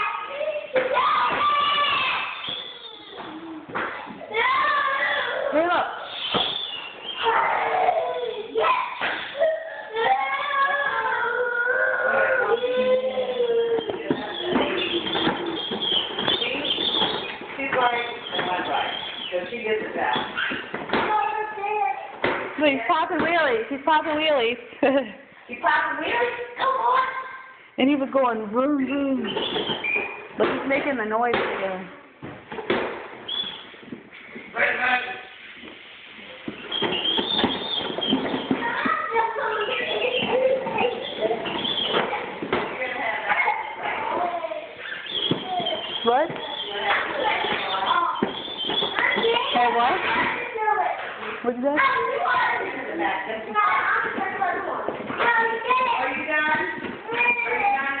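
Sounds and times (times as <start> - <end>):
toy wheels rolling on tile: 12.5 - 20.8, 35.3 - 44.2
child making wordless noises: 21.1 - 22.1.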